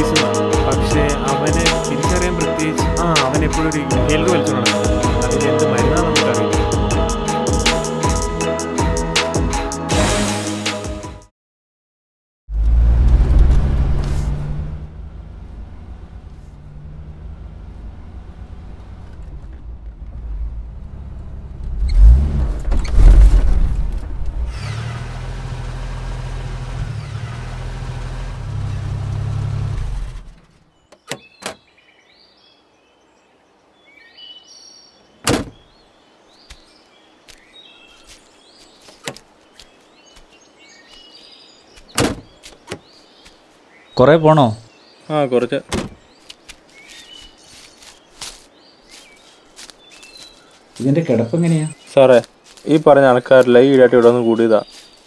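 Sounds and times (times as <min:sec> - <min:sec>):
birds chirping: 0:00.0 - 0:09.4, 0:30.4 - 0:55.0
jeep engine driving by: 0:12.5 - 0:30.4.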